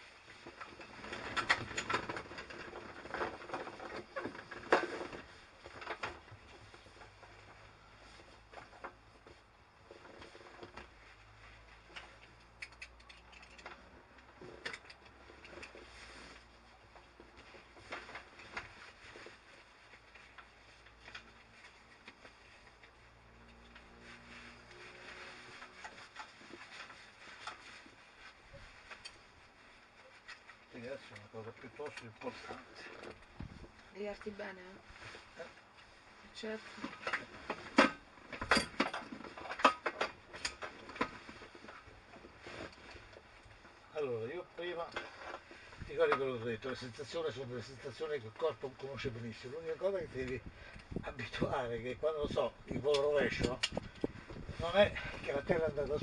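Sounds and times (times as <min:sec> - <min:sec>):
rustling: 0:00.0 - 0:56.0.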